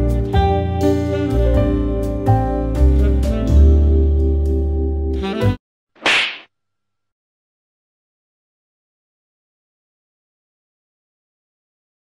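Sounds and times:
short swish: 6.0 - 6.5.

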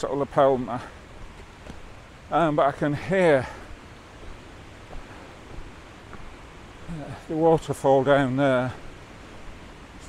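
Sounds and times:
distant waterfall rushing: 0.0 - 10.0.

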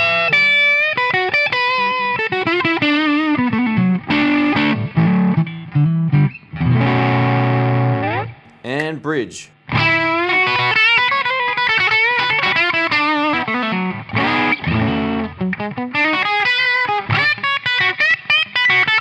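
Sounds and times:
overdriven electric guitar: 0.0 - 8.4, 9.7 - 19.0.

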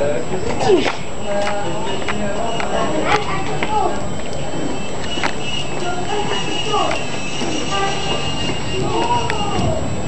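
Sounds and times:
busy pedestrian street noise: 0.0 - 10.0
passers-by talking: 0.0 - 10.0.

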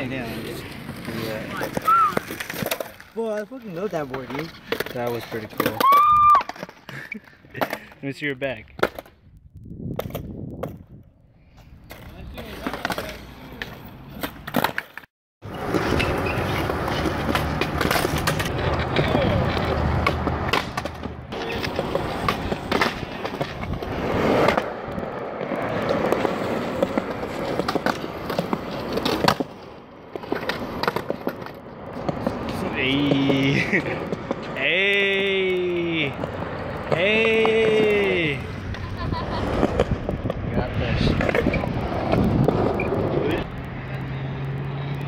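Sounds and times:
skateboards rolling on asphalt: 0.0 - 45.0
skateboard decks clacking: 0.1 - 8.0, 11.8 - 40.5.

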